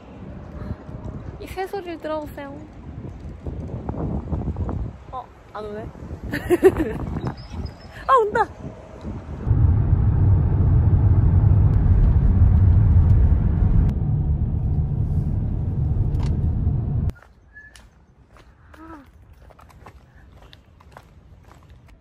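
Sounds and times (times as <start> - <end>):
car cabin road rumble: 9.4 - 17.1.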